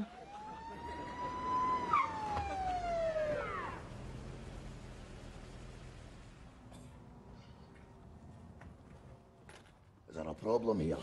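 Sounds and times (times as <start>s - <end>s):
siren yelp: 0.0s - 4.4s
police siren wailing: 0.0s - 4.9s.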